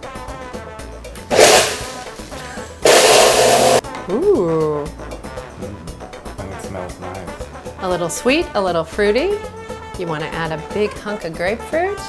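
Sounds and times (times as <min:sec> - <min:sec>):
blender pulsing: 0:01.3 - 0:03.8.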